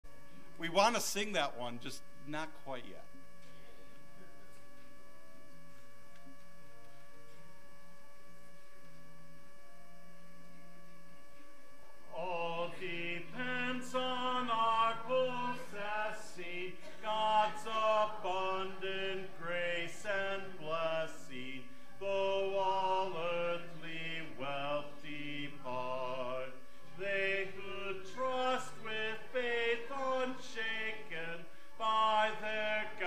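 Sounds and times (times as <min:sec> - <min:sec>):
hymn singing: 0:12.1 - 0:33.0.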